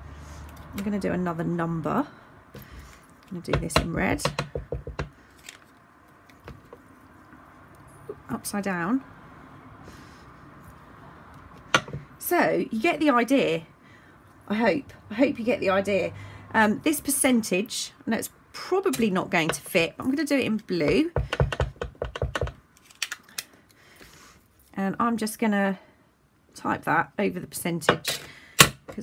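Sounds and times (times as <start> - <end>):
stamp block knocking on mat: 3.5 - 5.1, 11.7 - 12.1, 20.9 - 22.6.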